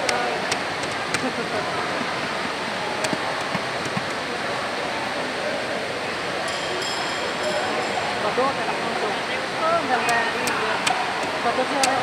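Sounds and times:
sports hall background noise: 0.0s - 12.0s.

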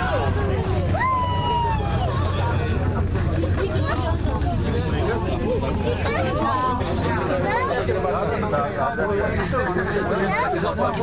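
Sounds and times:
low rumble of cable cabin: 0.0s - 11.0s
passengers talking indistinctly: 0.0s - 11.0s.

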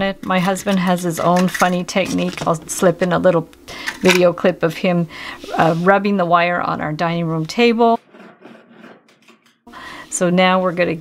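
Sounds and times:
wire scraping against table: 8.0s - 9.6s.

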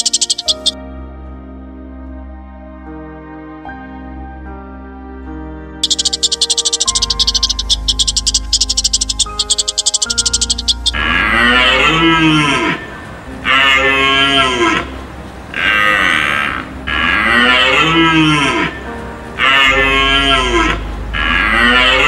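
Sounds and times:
long animal calls: 0.0s - 0.8s, 5.8s - 14.9s
rapid clicking chatter: 0.0s - 0.8s, 5.8s - 11.0s
soft music: 0.0s - 22.0s.

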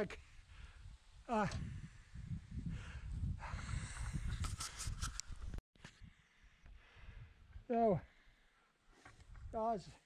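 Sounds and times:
man breathing hard: 0.3s - 1.0s, 1.6s - 4.4s, 6.0s - 9.0s.

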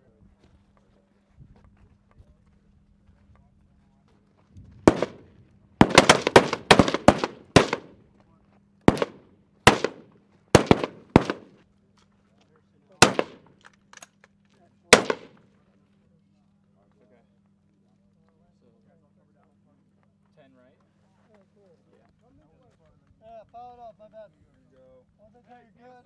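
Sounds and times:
rifle shots: 4.9s - 8.0s, 8.9s - 11.6s, 13.0s - 13.6s, 14.9s - 15.4s.

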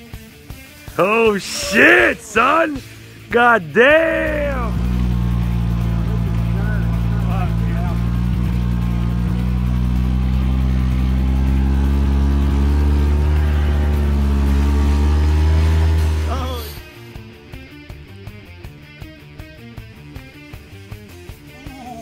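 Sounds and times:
vehicle engine running under load: 2.4s - 17.2s.

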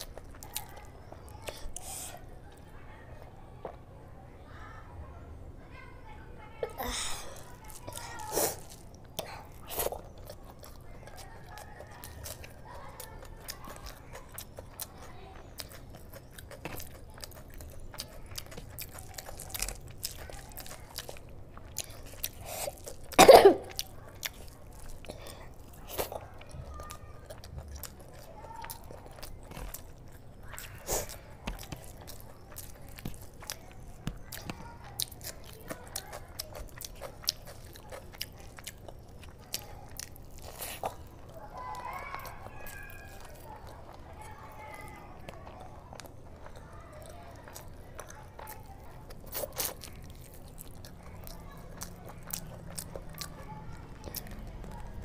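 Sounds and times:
close chewing with mouth smacks: 0.0s - 2.7s, 7.2s - 55.0s.

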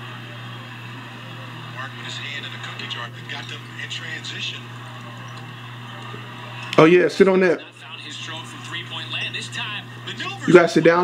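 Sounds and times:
faint commentator speech: 0.0s - 11.0s
steady low hum: 0.0s - 11.0s.

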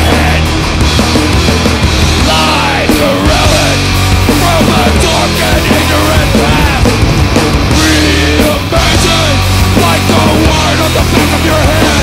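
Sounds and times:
hardcore punk band playing: 0.0s - 12.0s.

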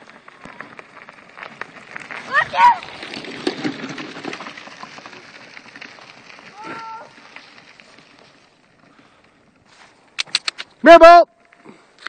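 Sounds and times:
footsteps crunching on snow: 9.6s - 10.2s.

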